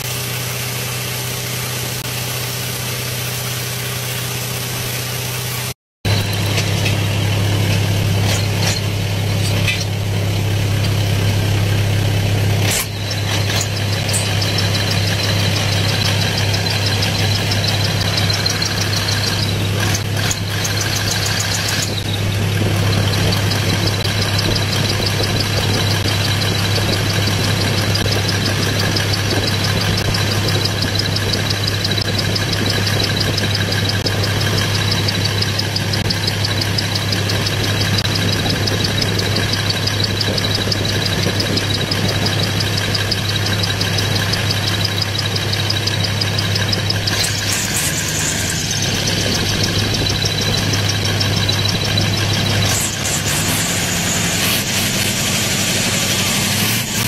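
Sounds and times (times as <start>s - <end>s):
boat engine drone: 0.0s - 57.0s.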